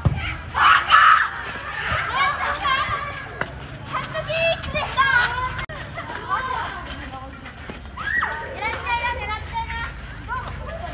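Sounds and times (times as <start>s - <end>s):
children calling out and shrieking: 0.0s - 6.8s, 7.8s - 10.9s.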